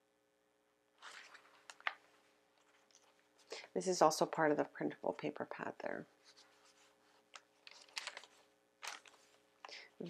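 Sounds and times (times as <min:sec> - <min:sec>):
page turning rustle: 0:01.0 - 0:03.5, 0:06.2 - 0:09.6
paper rustling: 0:01.0 - 0:03.5, 0:06.2 - 0:09.8.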